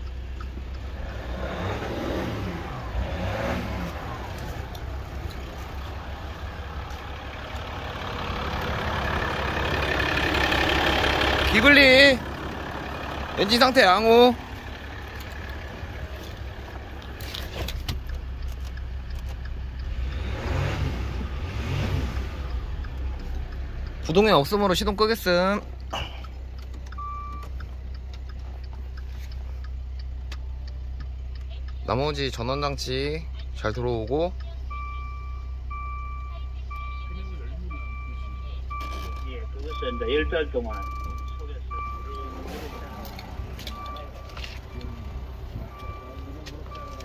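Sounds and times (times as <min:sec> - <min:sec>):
diesel engine idling: 0:00.0 - 0:47.0
sharp clicks: 0:14.5 - 0:20.6
electronic warning chime: 0:34.7 - 0:47.0.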